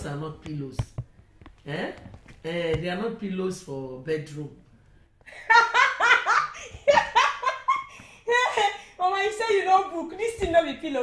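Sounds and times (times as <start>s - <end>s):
woman laughing: 5.3s - 8.9s.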